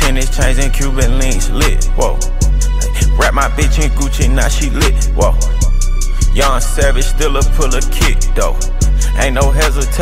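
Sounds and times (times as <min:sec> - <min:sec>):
deep sustained bass: 0:00.0 - 0:10.0
rapping over a beat: 0:00.0 - 0:10.0
steady beat: 0:00.0 - 0:10.0.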